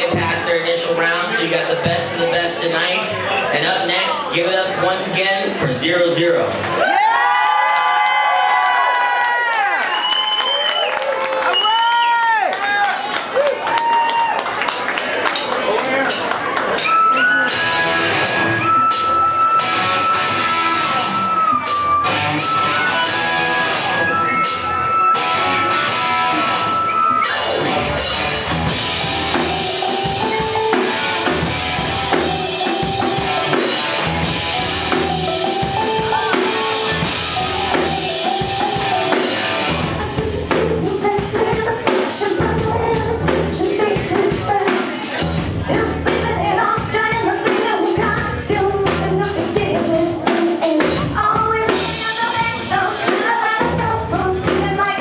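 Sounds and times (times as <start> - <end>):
steady drum beat: 0.0 - 2.6, 16.1 - 55.0
rock band with electric guitar: 0.0 - 7.7, 12.8 - 55.0
audience whoops and cheers: 6.6 - 14.8, 16.4 - 28.0.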